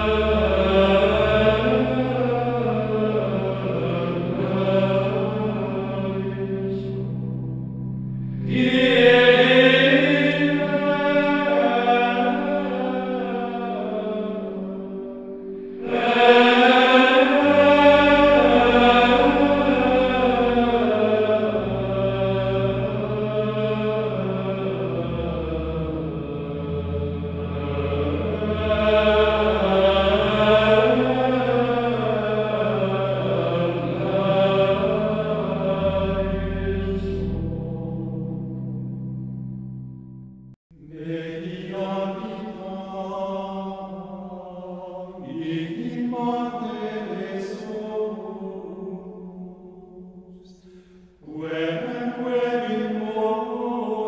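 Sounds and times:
low held drone: 0.0s - 41.6s
sung chant melody: 0.0s - 54.0s.

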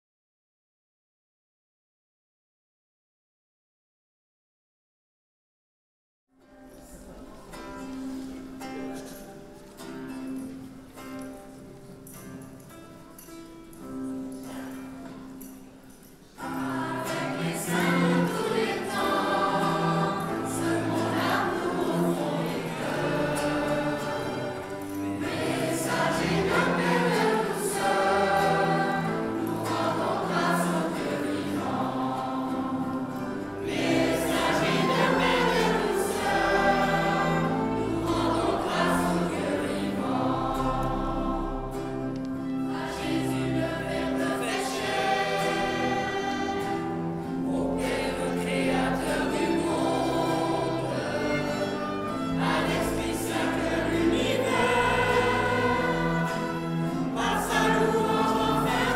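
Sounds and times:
classical guitar: 6.4s - 58.9s
children's choir singing: 6.8s - 58.9s
violin: 16.4s - 58.9s.

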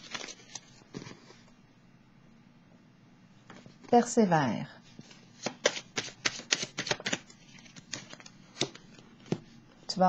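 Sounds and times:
cards being shuffled: 0.0s - 1.2s, 5.0s - 9.4s.

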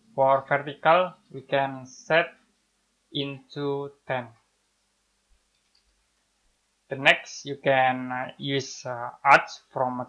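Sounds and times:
man's voice: 6.9s - 10.0s.

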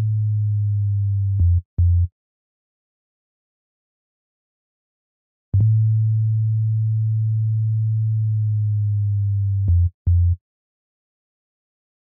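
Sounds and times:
sine-wave bass synth notes: 0.0s - 2.1s, 5.6s - 10.4s.

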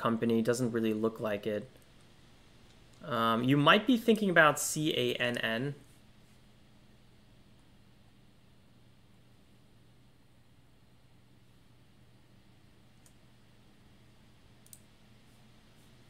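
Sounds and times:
faint steady hum: 0.0s - 16.0s
computer mouse clicks: 13.0s - 13.2s, 14.6s - 14.9s.

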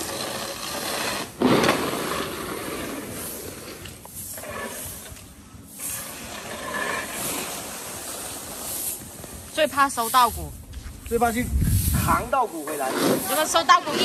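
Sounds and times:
brooms sweeping grain on concrete: 0.0s - 14.0s.

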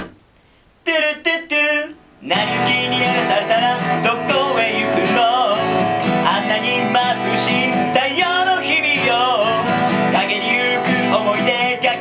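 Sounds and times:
acoustic guitar: 0.0s - 12.0s
person singing: 0.9s - 12.0s.

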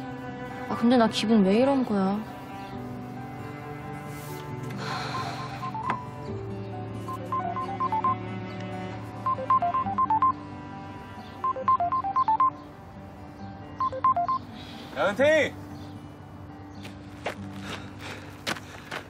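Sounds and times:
soft background music: 0.0s - 19.0s
smartphone ringtone beeps: 5.5s - 6.0s, 7.1s - 8.2s, 9.2s - 10.4s, 11.4s - 12.6s, 13.8s - 14.4s.

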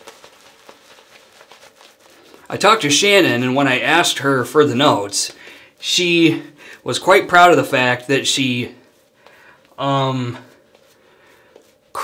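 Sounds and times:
shaving brush squishing lather: 0.0s - 12.0s.

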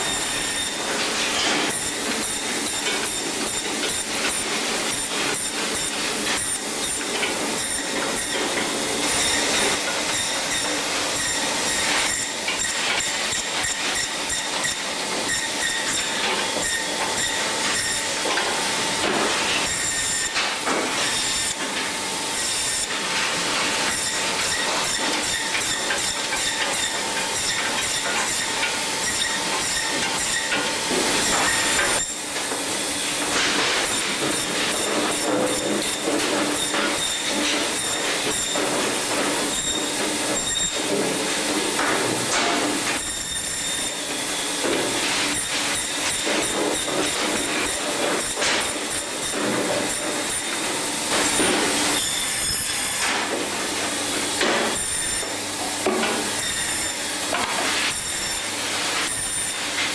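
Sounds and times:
band saw cutting: 0.0s - 59.9s.

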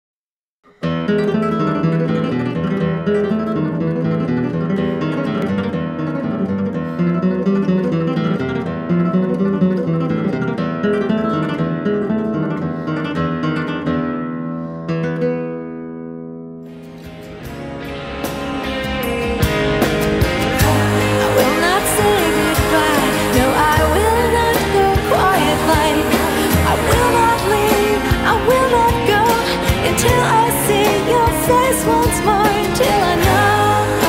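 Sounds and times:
acoustic guitar music: 0.6s - 34.0s.

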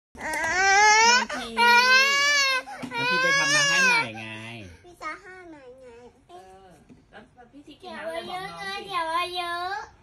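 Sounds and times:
toddler crying loudly: 0.2s - 4.2s.

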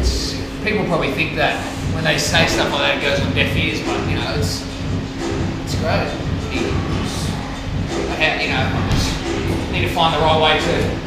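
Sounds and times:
low rumble with hum: 0.0s - 11.0s
faint man's voice: 5.6s - 11.0s.

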